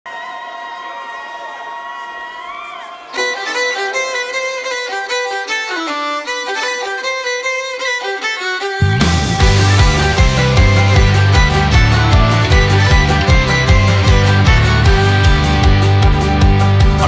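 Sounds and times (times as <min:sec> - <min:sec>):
fiddle melody: 0:03.1 - 0:17.0.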